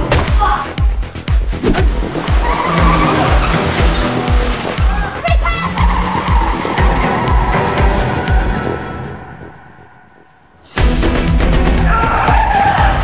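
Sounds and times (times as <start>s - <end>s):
dramatic score with low drum: 0.0s - 13.0s
car tyres screeching: 1.5s - 10.8s.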